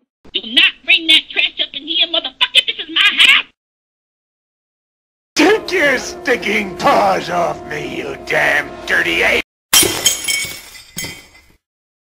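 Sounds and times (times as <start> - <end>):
glass shattering: 9.7 - 11.6.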